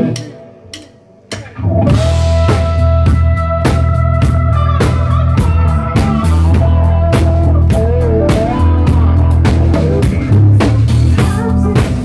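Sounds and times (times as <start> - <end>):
bass guitar: 0.0 - 12.0
drum kit steady beat: 0.0 - 12.0
electric guitar lines: 0.0 - 12.0
keyboards: 0.0 - 12.0.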